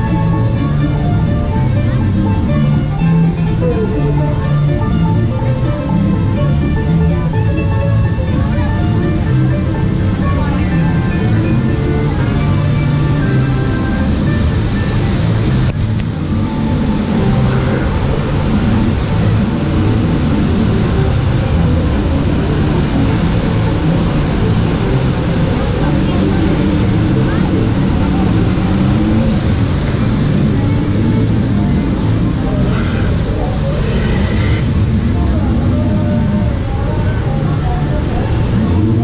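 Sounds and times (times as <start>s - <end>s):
background music: 0.0s - 39.0s
people talking: 0.0s - 39.0s
rush of falling water: 0.0s - 39.0s.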